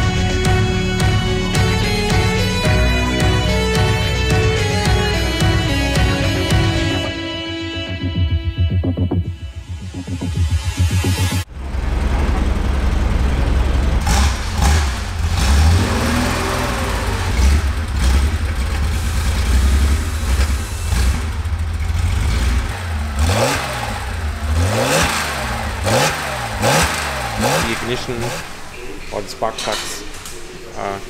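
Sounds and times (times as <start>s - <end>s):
car engine rumbling and revving: 9.2s - 29.1s.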